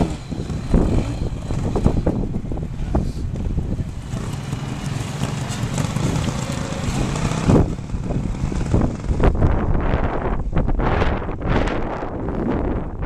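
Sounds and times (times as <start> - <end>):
motorcycle engine running: 0.0 - 10.8.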